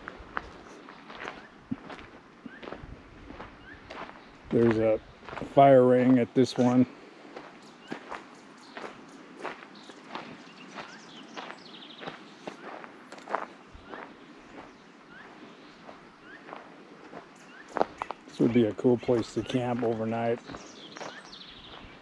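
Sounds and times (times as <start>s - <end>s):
footsteps on dry dirt: 0.0s - 22.0s.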